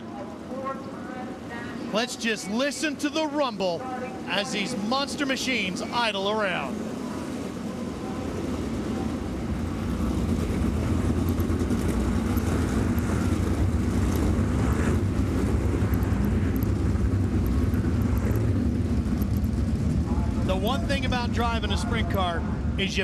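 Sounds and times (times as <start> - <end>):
race car engines idling: 1.9 - 23.0.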